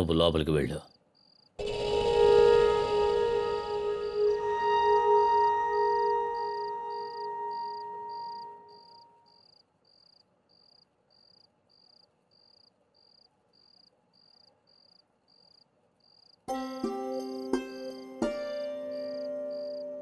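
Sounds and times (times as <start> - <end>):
cricket chirping: 0.8 - 16.5, 17.2 - 20.0
held background music notes: 1.6 - 9.3, 16.5 - 20.0.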